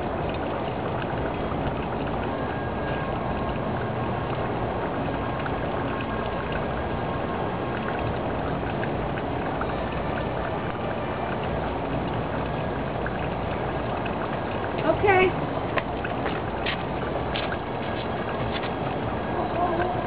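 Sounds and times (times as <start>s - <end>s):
outdoor rumble and hiss: 0.0s - 20.0s.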